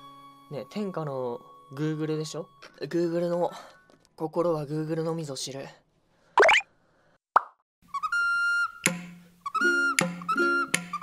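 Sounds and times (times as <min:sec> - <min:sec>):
short pop sound effect: 0:06.4 - 0:06.6.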